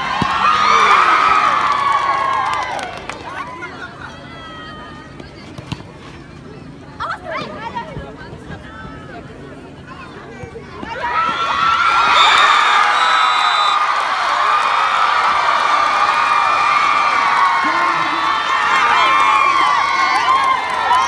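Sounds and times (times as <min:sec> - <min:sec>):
crowd cheering and screaming: 0:00.0 - 0:03.0, 0:11.0 - 0:21.0.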